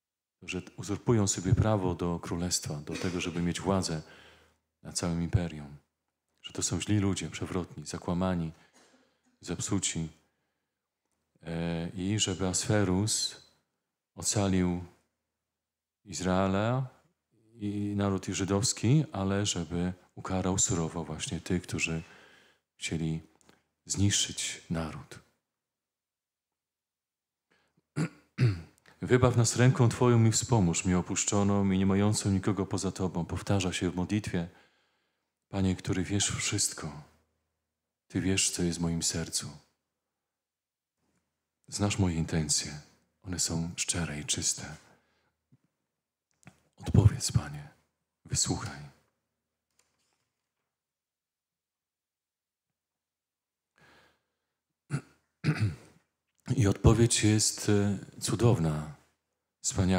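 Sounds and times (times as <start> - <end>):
man clearing his throat: 2.8 - 3.7, 28.0 - 28.8, 54.9 - 56.0.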